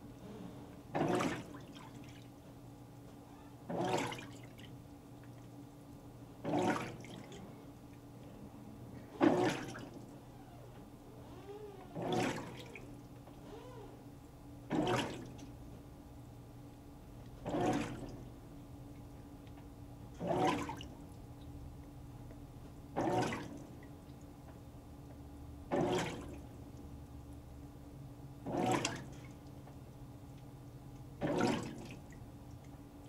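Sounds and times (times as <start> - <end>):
water swishing in washer: 0.0 - 24.8, 25.6 - 27.4, 28.4 - 33.0
washer motor hum: 0.0 - 33.0.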